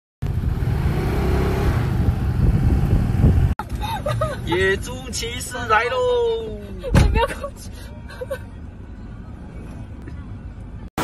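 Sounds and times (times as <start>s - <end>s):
moving vehicle rumble: 0.2s - 11.0s
wind noise on microphone: 1.8s - 3.6s.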